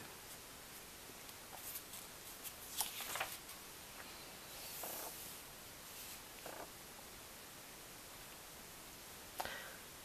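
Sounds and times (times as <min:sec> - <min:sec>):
paper pages rustling: 0:01.5 - 0:03.6.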